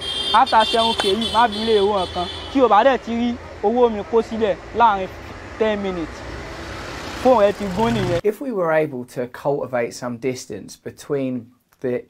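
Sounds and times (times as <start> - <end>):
traffic noise: 0.0 - 8.2
vehicle engine rumble: 0.1 - 8.2
man speaking: 0.4 - 6.3, 7.2 - 12.0.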